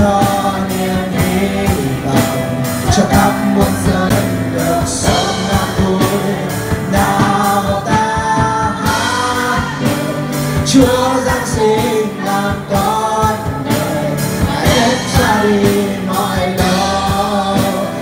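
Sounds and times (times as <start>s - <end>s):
live band with drum beat: 0.0s - 18.0s
man singing a hymn: 0.0s - 18.0s.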